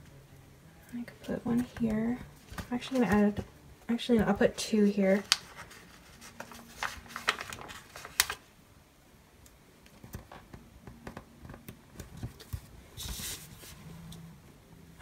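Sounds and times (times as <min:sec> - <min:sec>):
paper rustle: 0:05.1 - 0:08.5, 0:12.0 - 0:13.9.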